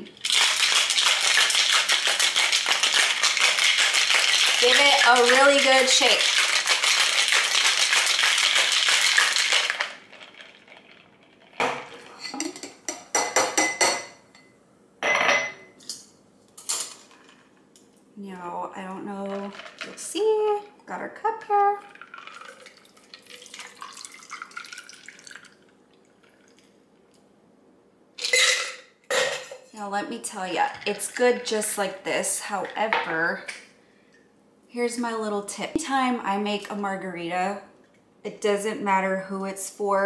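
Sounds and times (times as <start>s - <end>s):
ice rattling in cocktail shaker: 0.2s - 11.6s, 19.2s - 20.3s, 21.8s - 25.6s.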